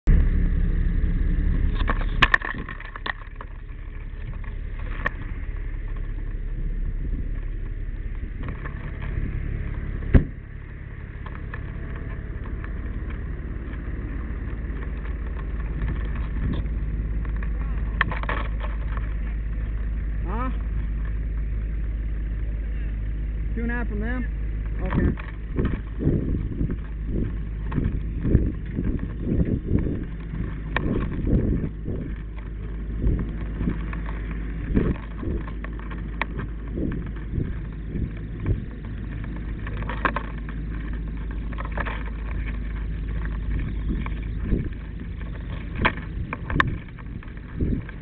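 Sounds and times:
vehicle engine rumbling: 0:00.0 - 0:48.0
knocks and bumps: 0:01.5 - 0:22.0, 0:24.5 - 0:48.0.

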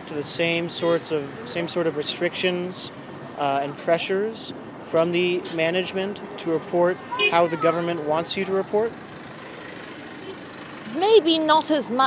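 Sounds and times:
road traffic rumble and hiss: 0:00.0 - 0:12.0.

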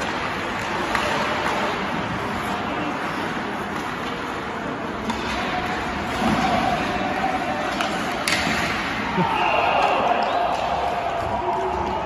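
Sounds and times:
skates and sticks on ice: 0:00.0 - 0:12.0
steady rink noise: 0:00.0 - 0:12.0.

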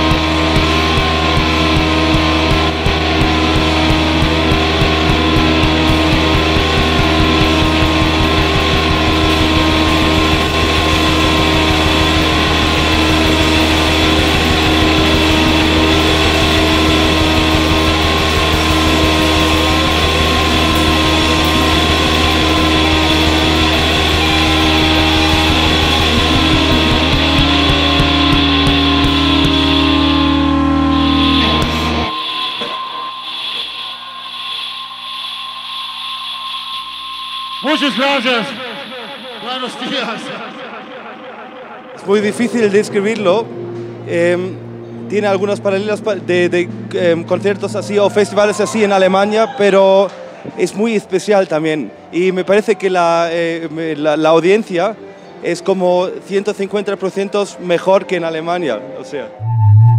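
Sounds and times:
live rock band playing: 0:00.0 - 0:33.4
held high tone: 0:00.0 - 0:42.8, 0:59.3 - 0:59.9
deep bass drone: 0:00.0 - 0:49.2, 0:59.3 - 0:59.9
electric guitar: 0:00.0 - 0:50.7.

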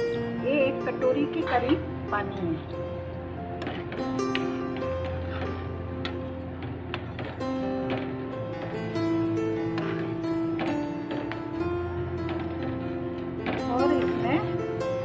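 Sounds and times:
instrumental background music: 0:00.0 - 0:15.0.

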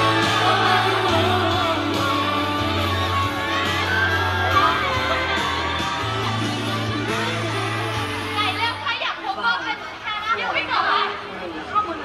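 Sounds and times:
crowd chatter: 0:00.0 - 0:12.0
young women talking and exclaiming: 0:00.0 - 0:12.0.

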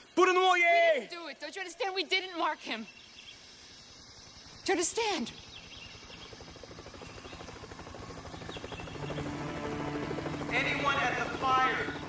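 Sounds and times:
helicopter rotor chopping: 0:04.3 - 0:12.0.

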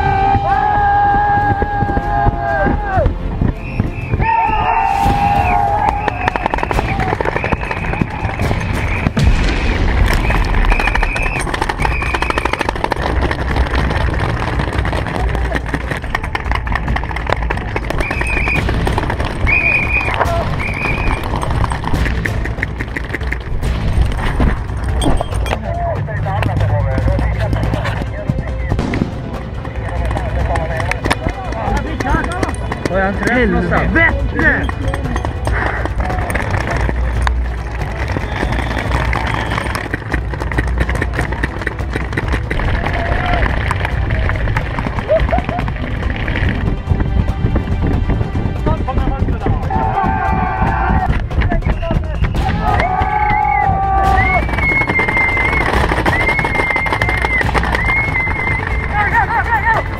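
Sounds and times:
players shouting: 0:00.0 - 0:03.2, 0:04.0 - 0:09.2, 0:42.6 - 0:45.2, 0:49.2 - 0:59.9
paintball markers firing: 0:05.7 - 0:25.6, 0:34.8 - 0:46.6, 0:54.0 - 0:58.8
steady rumble: 0:26.0 - 0:49.8.

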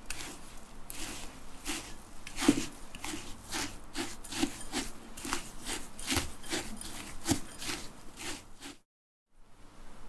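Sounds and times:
spatula scraping crumbs in glass bowl: 0:00.0 - 0:08.8.

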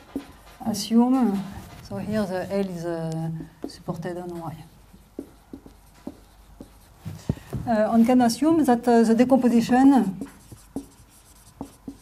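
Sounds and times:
marker writing on whiteboard: 0:00.0 - 0:08.2, 0:09.1 - 0:12.0.

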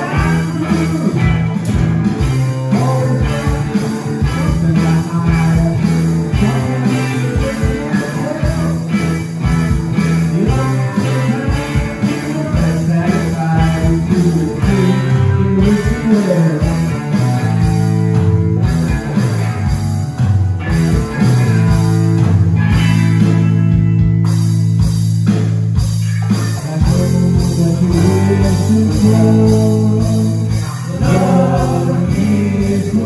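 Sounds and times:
rock band playing live: 0:00.0 - 0:33.0.

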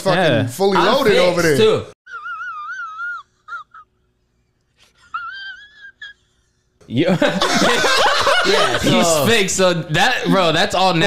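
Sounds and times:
man's falsetto wail: 0:02.1 - 0:03.8.

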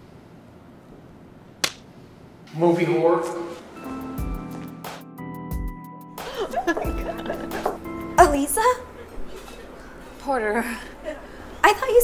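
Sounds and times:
sharp smack: 0:01.6 - 0:01.9.

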